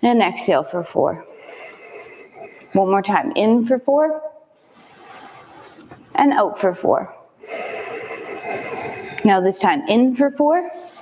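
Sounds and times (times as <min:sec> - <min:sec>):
person exhaling slowly: 0:07.4 - 0:09.3.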